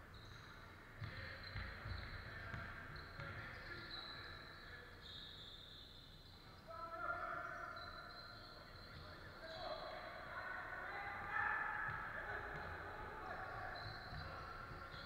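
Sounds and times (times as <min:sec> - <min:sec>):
sneakers squeaking: 0:00.0 - 0:15.0
basketball bouncing: 0:01.0 - 0:03.4.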